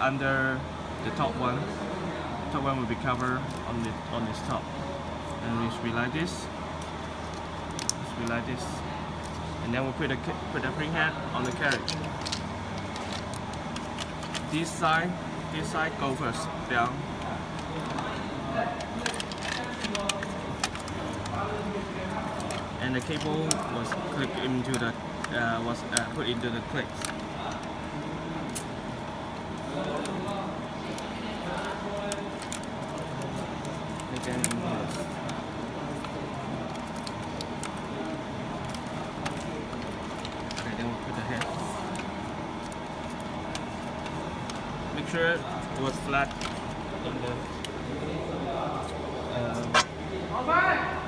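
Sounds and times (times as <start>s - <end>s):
steady background hum: 0.0s - 51.0s
light clicks and rustles of handling: 2.6s - 47.9s.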